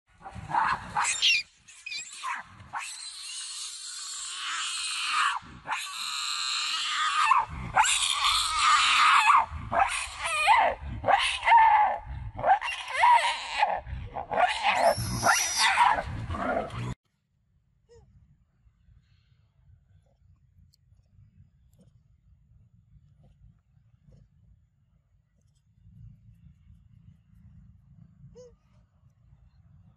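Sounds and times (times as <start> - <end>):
monkeys screaming: 0.4 - 3.0, 12.6 - 16.2.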